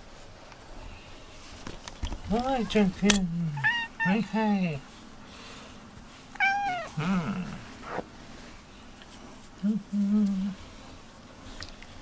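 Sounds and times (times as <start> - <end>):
cat meowing: 3.6 - 4.2, 6.4 - 7.0.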